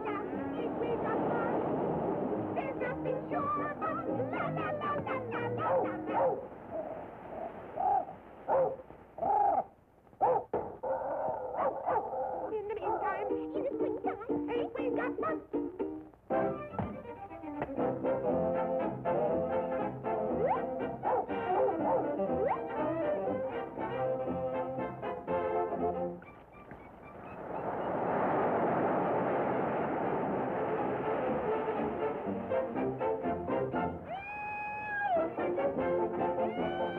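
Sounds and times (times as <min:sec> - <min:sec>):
cartoon dog barks: 0:05.5 - 0:06.8, 0:07.8 - 0:13.4, 0:20.4 - 0:22.8
cartoon wave rushing: 0:26.3 - 0:32.2.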